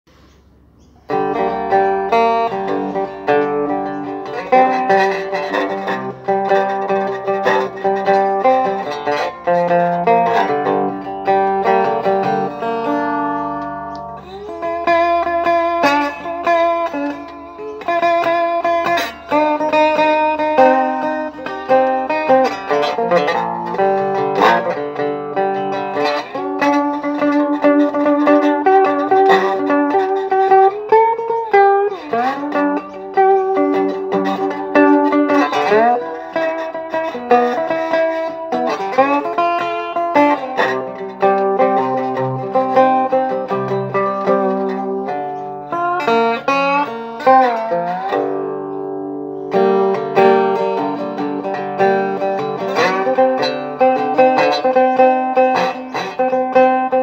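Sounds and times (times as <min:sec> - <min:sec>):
slide guitar fingerpicked melody: 0:00.1 - 0:57.0.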